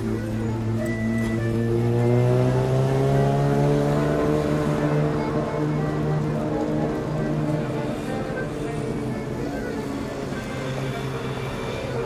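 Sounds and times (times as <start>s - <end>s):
accordion playing: 0.0s - 12.0s
vehicle accelerating past: 0.8s - 9.2s.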